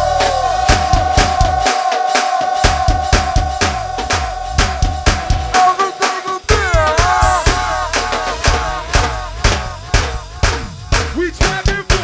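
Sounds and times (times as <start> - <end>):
go-go band music: 0.0 - 12.0.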